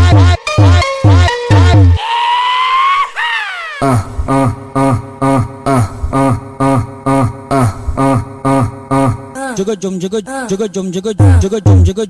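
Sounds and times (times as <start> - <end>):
heavy bass beat: 0.0 - 2.0, 4.3 - 12.0.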